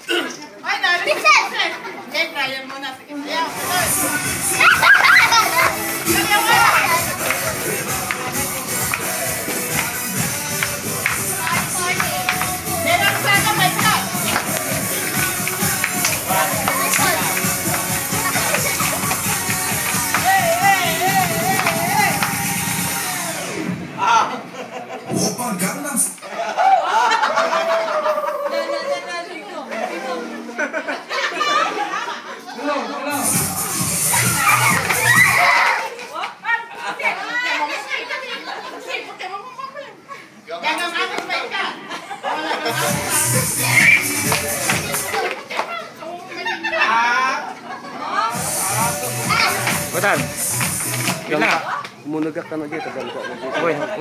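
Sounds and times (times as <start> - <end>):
crowd of people chattering: 0.0 - 54.0
children shouting excitedly: 3.5 - 8.6, 11.4 - 24.4, 33.0 - 36.1, 42.7 - 47.0, 48.1 - 50.0
music playing: 3.5 - 26.0, 33.1 - 35.6, 42.7 - 45.3, 48.3 - 51.6.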